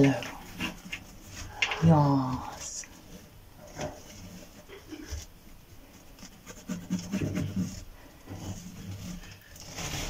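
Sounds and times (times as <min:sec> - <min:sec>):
hand rubbing scaly skin: 0:00.0 - 0:10.0.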